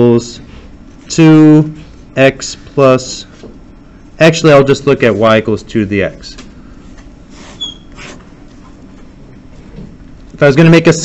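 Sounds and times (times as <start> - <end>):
marker squeak: 7.4 - 8.3.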